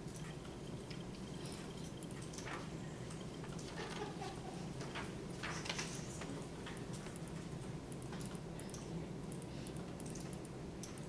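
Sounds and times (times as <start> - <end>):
laptop keys typing: 0.0 - 11.0
low room hum: 0.0 - 11.0.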